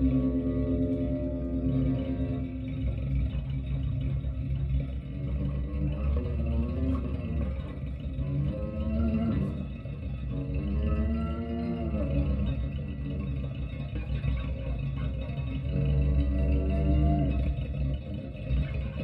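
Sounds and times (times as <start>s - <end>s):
electric guitar through an amplifier: 0.0s - 19.0s.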